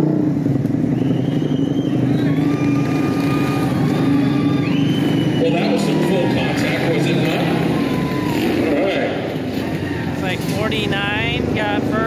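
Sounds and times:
motorcycle engines droning: 0:00.0 - 0:12.0
crowd noise: 0:00.9 - 0:12.0.

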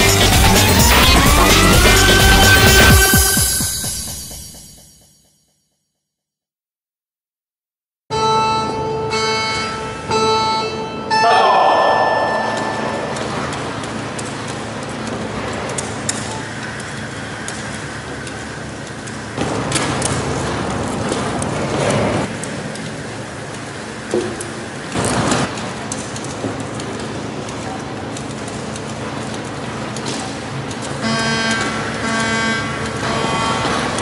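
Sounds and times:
timer beeps: 0:11.1 - 0:13.6
crowd murmuring and calling out: 0:11.2 - 0:13.5.

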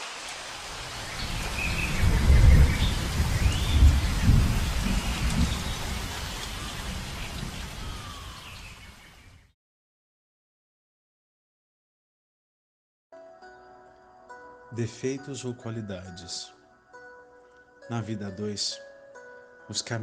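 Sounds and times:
rain: 0:00.0 - 0:09.5
thunder rumbling: 0:00.5 - 0:08.8.

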